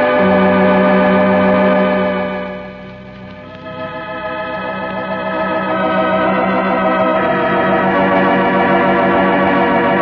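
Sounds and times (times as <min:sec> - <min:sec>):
organ chord held: 0:00.0 - 0:10.0.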